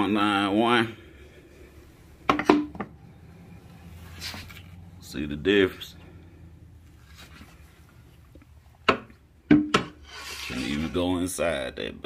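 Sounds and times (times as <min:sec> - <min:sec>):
plastic tube knocking on wood: 0:08.9 - 0:10.0.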